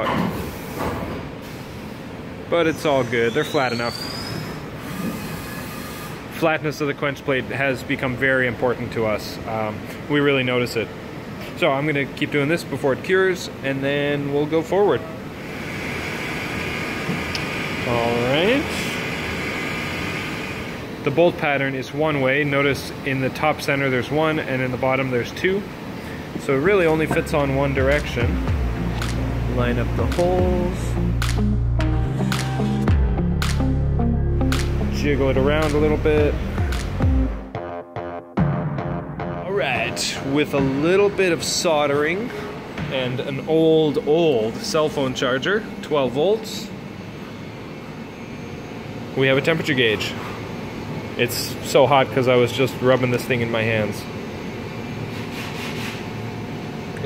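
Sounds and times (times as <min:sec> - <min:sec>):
machine fan noise: 0:00.0 - 0:37.5, 0:39.5 - 0:57.0.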